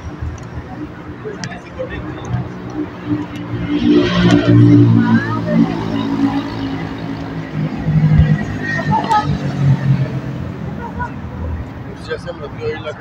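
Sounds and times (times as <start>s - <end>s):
cars driving past: 0.0s - 13.0s
people talking: 0.0s - 13.0s.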